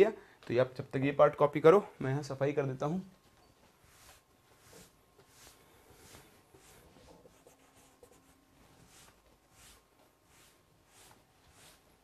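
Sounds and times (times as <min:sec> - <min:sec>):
duster wiping chalkboard: 0:03.6 - 0:12.0.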